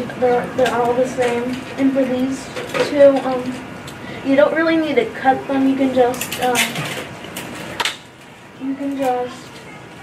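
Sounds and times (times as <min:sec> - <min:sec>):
boy speaking haltingly: 0:00.0 - 0:06.8, 0:08.6 - 0:09.5.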